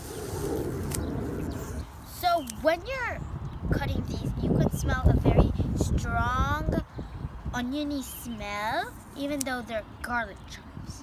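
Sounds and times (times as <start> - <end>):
scissors snipping chives: 2.4 - 2.7, 9.2 - 9.6.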